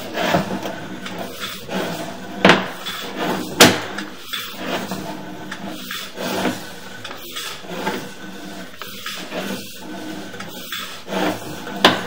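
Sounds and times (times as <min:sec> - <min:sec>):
cable scraping in pipe: 0:00.0 - 0:12.0.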